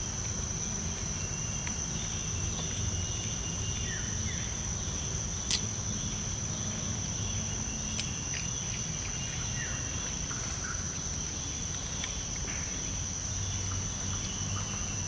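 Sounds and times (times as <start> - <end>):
insects droning: 0.0 - 15.0.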